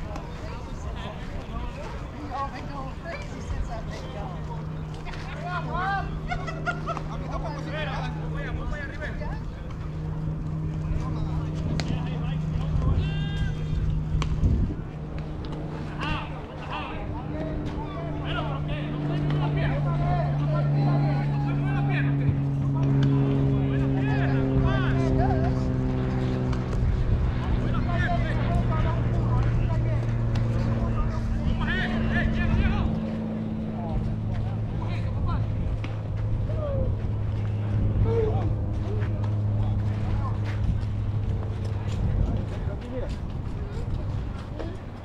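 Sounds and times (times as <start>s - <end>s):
distant voices: 0.0s - 45.0s
engine-like drone: 0.0s - 45.0s.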